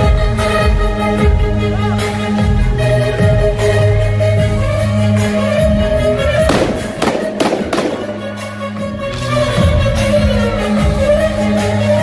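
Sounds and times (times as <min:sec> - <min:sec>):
loud music: 0:00.0 - 0:12.0
pyrotechnic sharp bangs: 0:06.5 - 0:08.4.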